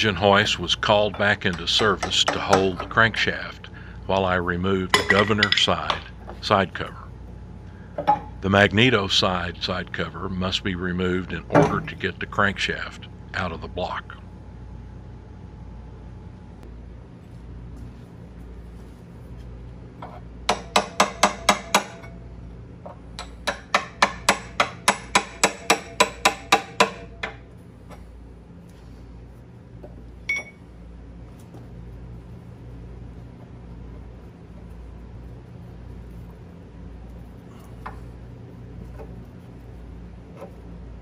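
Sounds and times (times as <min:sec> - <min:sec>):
low steady hum: 0:00.0 - 0:41.0
hand tools clicking on metal: 0:00.9 - 0:03.0.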